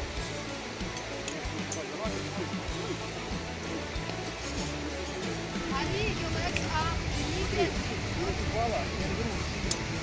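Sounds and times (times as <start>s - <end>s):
gliding melodic line: 0.0s - 10.0s.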